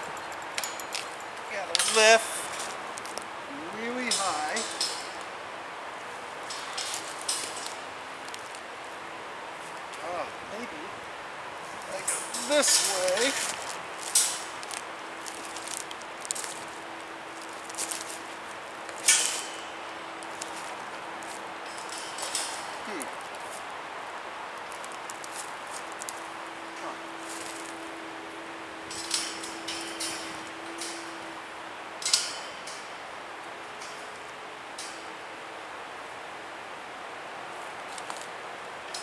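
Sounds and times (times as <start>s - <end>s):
sharp metallic clinks: 0.0s - 2.9s, 3.7s - 5.4s, 6.4s - 8.0s, 11.8s - 23.6s, 24.6s - 34.2s
wire panel clinking and rattling: 0.0s - 3.2s, 3.8s - 5.3s, 6.4s - 8.7s, 11.8s - 23.7s, 24.5s - 33.1s.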